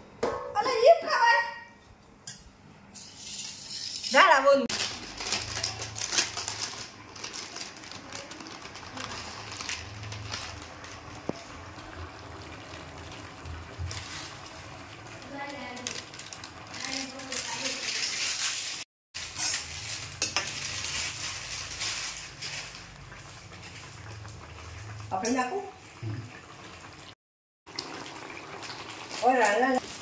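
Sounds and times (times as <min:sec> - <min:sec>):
snack packet crinkling open: 0:04.7 - 0:11.2.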